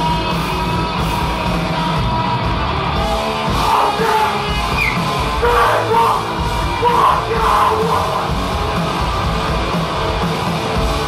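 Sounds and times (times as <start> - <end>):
live punk band playing: 0.0 - 11.0
person yelling vocals: 3.6 - 4.6, 5.4 - 8.3.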